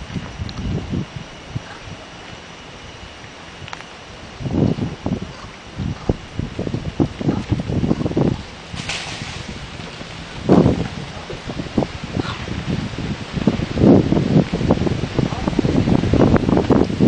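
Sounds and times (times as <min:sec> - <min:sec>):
wind buffeting microphone: 0:00.0 - 0:17.0.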